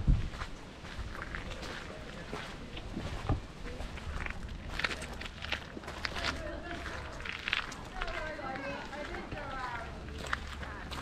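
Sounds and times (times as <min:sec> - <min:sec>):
people talking indistinctly: 0:03.6 - 0:11.0.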